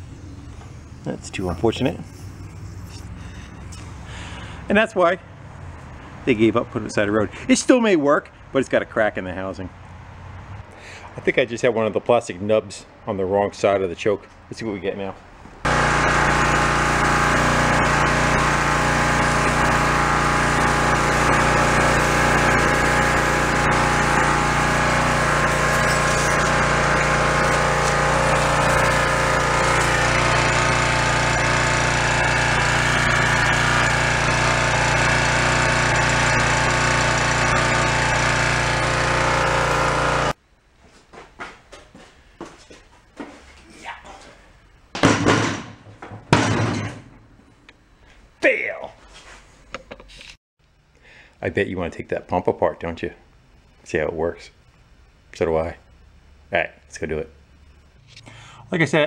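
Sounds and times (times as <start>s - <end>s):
small engine running: 0.0s - 4.6s, 15.6s - 40.4s
water spraying: 15.7s - 40.4s.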